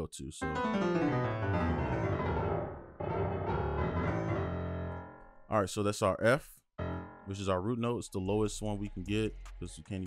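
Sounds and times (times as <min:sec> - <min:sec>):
low bass keyboard notes: 0:00.4 - 0:05.5, 0:06.8 - 0:07.7.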